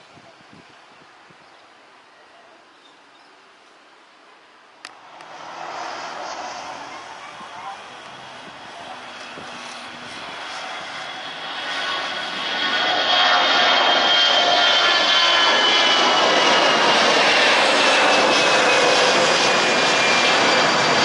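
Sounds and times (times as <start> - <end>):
high engine whine: 4.8 - 21.0
jet engine roar: 4.9 - 21.0.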